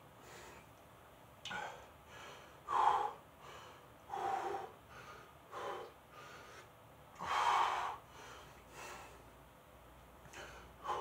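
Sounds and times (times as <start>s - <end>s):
man breathing hard: 0.2s - 0.7s, 1.5s - 9.4s, 10.2s - 11.0s.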